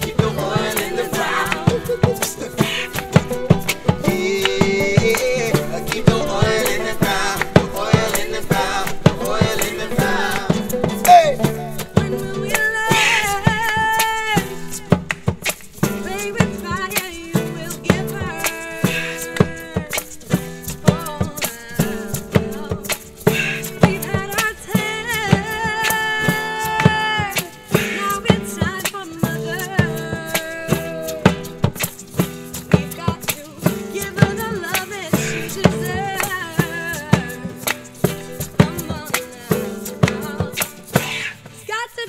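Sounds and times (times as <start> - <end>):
voices singing: 0.0 - 15.0, 15.8 - 31.6, 32.7 - 42.0
djembe beat: 0.0 - 41.6
banjo: 0.0 - 41.7
strummed acoustic guitars: 0.0 - 42.0.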